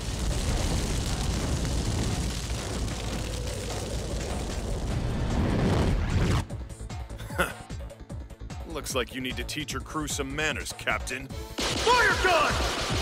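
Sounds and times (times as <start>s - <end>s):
fire blast explosion rumble: 0.0s - 6.4s.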